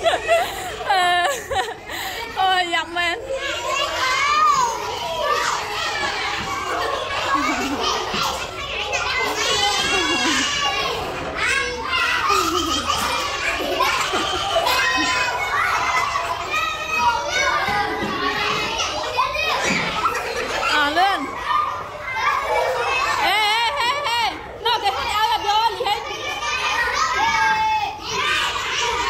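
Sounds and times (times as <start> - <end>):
young children talking and calling: 0.0 - 29.0.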